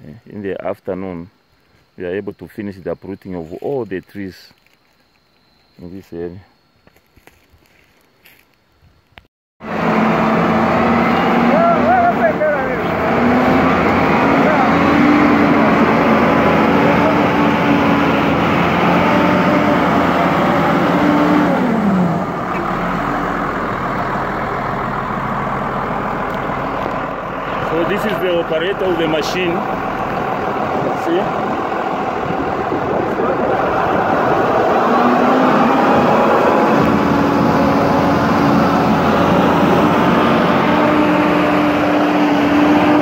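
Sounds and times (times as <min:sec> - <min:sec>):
diesel engine running loud: 0:09.6 - 0:43.0.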